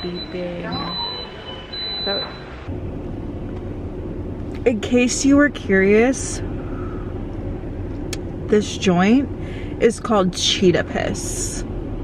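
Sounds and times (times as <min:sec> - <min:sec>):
car idling rumble: 0:02.5 - 0:12.0.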